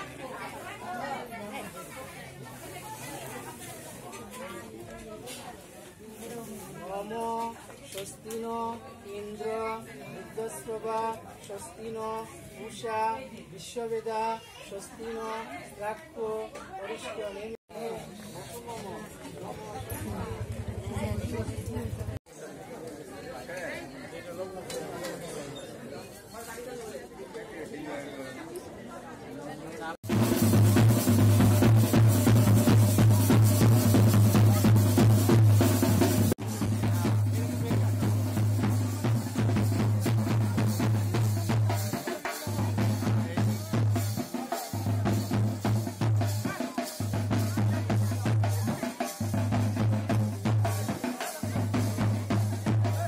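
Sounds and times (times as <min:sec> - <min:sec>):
indistinct chatter of people: 0:00.0 - 0:53.0
people talking at once: 0:00.0 - 0:53.0.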